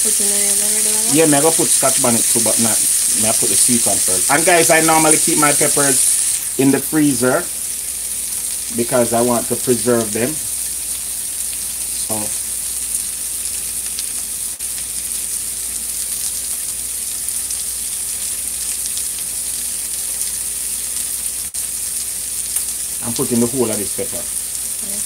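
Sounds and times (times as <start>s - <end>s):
food sizzling in frying pan: 0.0s - 25.0s.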